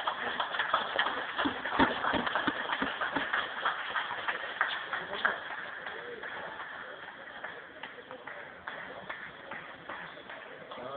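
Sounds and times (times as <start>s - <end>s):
hand clapping in a hall: 0.0s - 10.9s
voices: 4.9s - 10.9s.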